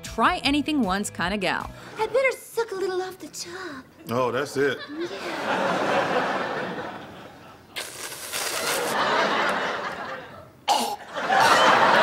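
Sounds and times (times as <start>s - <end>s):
studio audience laughing: 4.6s - 7.8s, 8.6s - 12.0s.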